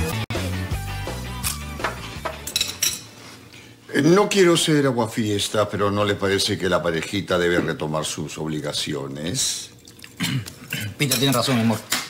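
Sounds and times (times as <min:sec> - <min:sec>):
background music: 0:00.0 - 0:02.9
tableware clinking: 0:01.4 - 0:03.2, 0:10.8 - 0:12.0.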